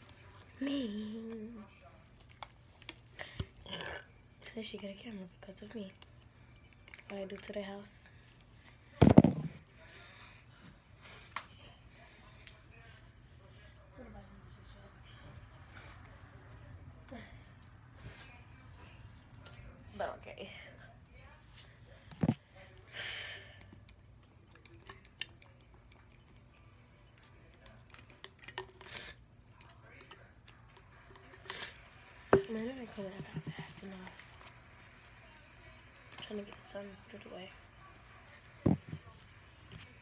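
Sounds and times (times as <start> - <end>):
handling knocks and clicks: 38.7 - 39.1.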